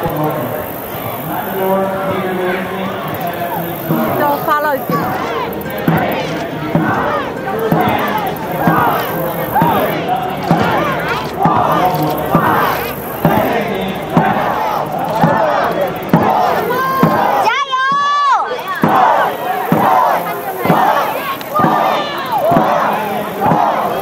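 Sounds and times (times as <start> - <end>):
crowd shouting and cheering: 0.0 - 24.0
drum beats: 0.0 - 24.0
high drawn-out shout: 3.2 - 24.0.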